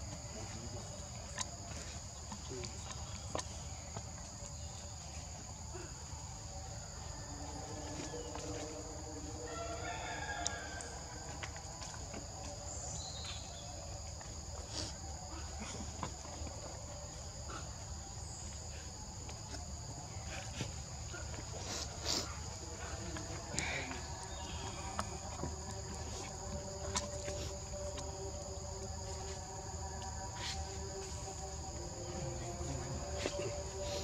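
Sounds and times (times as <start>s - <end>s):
high-pitched insect chorus: 0.0s - 34.0s
high-pitched insect drone: 19.8s - 34.0s.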